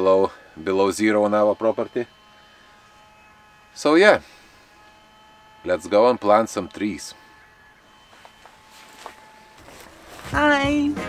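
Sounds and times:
soft rustles: 8.2s - 10.6s.

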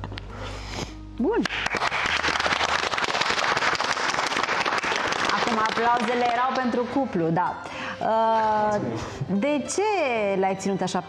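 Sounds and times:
crowd clapping: 1.4s - 6.8s.

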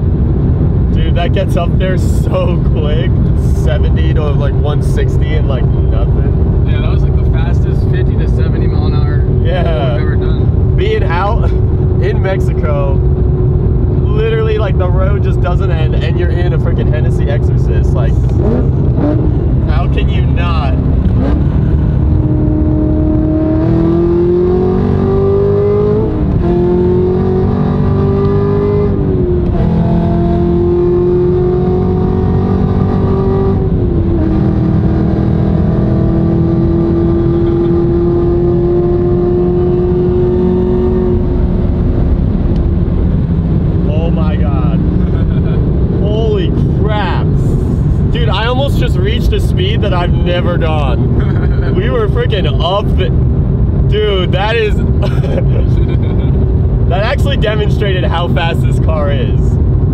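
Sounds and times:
car engine accelerating hard: 0.0s - 59.9s.

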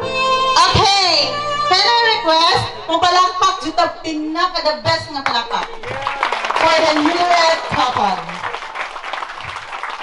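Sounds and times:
music: 0.0s - 5.2s.

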